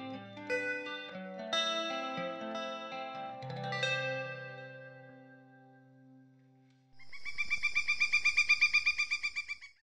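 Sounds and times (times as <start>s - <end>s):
bird trilling: 7.0s - 9.8s.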